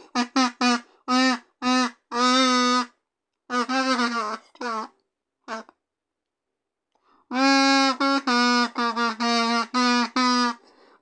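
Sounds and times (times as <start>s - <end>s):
kazoo notes: 0.0s - 5.8s, 7.0s - 11.0s.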